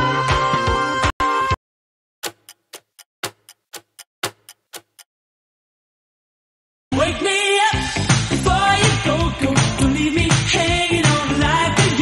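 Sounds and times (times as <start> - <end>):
music: 0.0 - 1.6, 6.9 - 12.0
clock ticking: 2.2 - 5.1.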